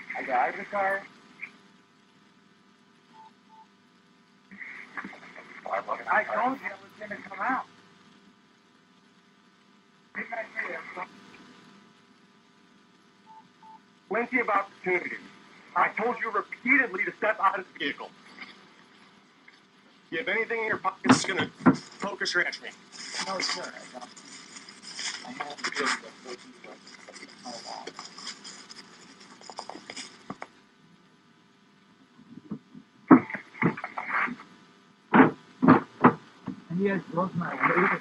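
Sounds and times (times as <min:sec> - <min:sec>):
faint background hiss: 0:00.0 - 0:38.0
clothing rustle: 0:22.9 - 0:30.4.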